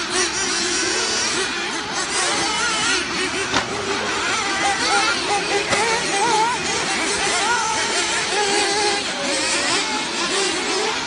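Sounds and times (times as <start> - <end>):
rc car motors whining: 0.0 - 11.0.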